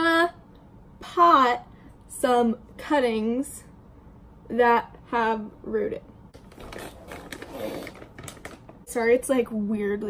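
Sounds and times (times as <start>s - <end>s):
clothing rustling: 6.4s - 8.7s.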